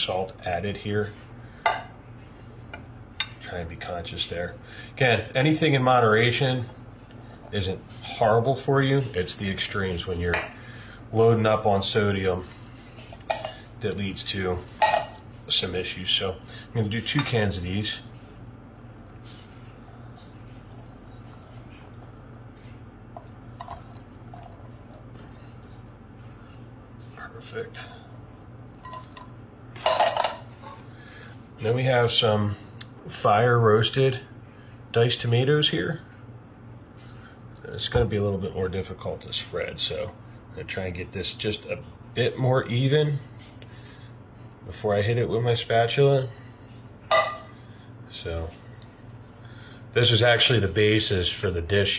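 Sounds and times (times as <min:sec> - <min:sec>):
steady low hum: 0:00.0 - 0:51.9.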